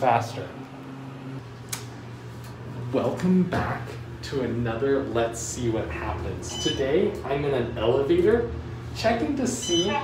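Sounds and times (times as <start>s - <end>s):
elevator cab low hum: 4.0s - 10.0s.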